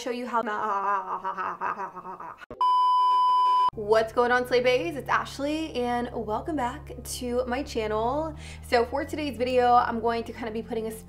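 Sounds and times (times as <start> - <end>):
woman laughing: 0.5 - 2.5
loud steady high beep: 2.6 - 3.7.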